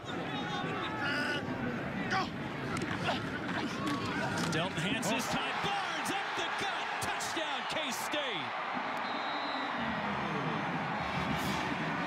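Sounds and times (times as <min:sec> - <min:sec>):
stadium crowd cheering: 0:03.6 - 0:12.0.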